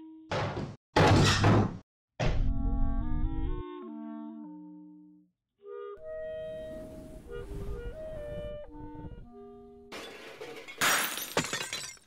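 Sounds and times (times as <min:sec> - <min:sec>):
shattering crash: 0:09.9 - 0:12.0.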